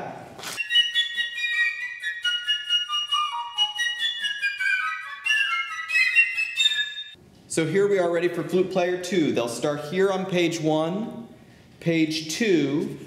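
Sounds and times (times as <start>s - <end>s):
flute music: 0.6s - 7.2s.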